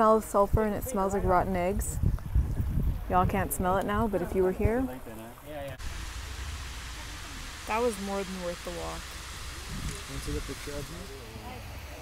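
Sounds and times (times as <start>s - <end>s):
steady outdoor hiss: 0.0s - 12.0s
low rumble: 5.8s - 11.9s.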